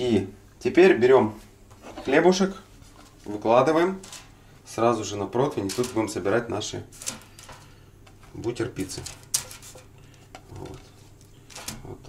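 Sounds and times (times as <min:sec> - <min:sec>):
bread rustling: 0:01.8 - 0:12.0.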